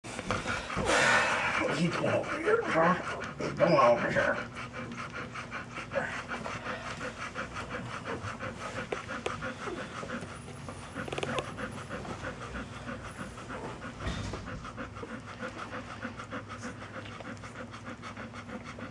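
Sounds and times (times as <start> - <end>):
dog panting: 0.1 - 18.9.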